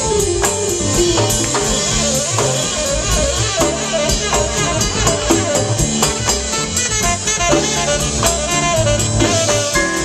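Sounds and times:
latin jazz band playing: 0:00.0 - 0:10.0.

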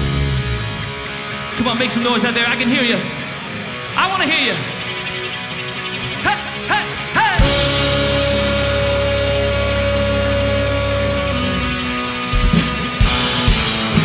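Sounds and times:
drum kit: 0:00.0 - 0:01.8, 0:03.2 - 0:14.0
electric guitar: 0:00.0 - 0:14.0.

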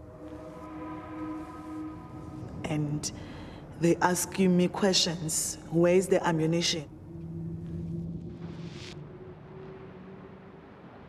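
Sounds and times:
low two-tone drone: 0:00.0 - 0:11.0.

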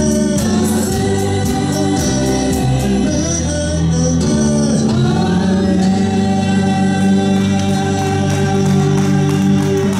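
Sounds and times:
group singing gospel song: 0:00.0 - 0:09.9.

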